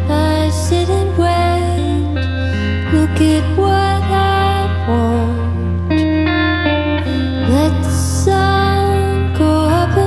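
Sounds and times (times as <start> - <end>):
electric guitar notes: 0.0 - 10.0.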